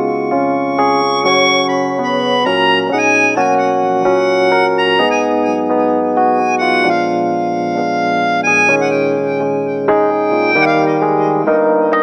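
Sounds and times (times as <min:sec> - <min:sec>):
electric piano chords: 0:00.0 - 0:12.0
melodica melody: 0:00.0 - 0:12.0.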